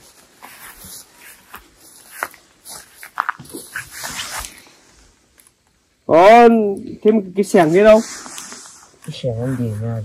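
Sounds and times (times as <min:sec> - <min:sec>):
root ball wrapping rustling: 0:00.0 - 0:04.7.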